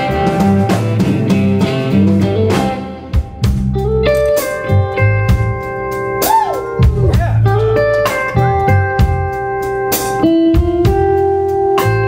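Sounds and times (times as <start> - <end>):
electric bass: 0.0 - 12.0
electric guitar lead: 0.0 - 12.0
steady drum beat: 0.0 - 12.0.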